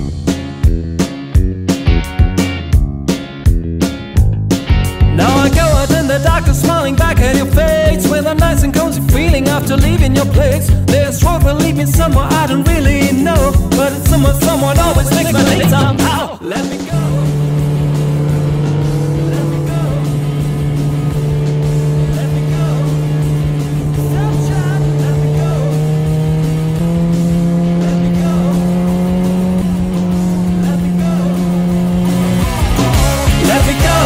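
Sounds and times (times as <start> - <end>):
motorcycle engine running: 0.0 - 34.0.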